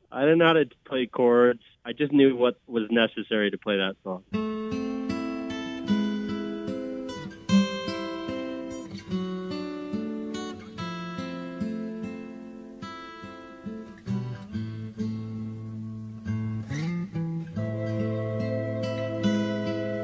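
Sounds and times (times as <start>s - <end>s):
acoustic guitar music: 4.2s - 20.0s.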